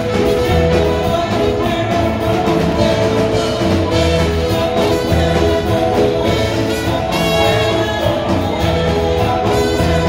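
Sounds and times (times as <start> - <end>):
drum kit beat: 0.0 - 10.0
trumpet melody: 2.7 - 10.0.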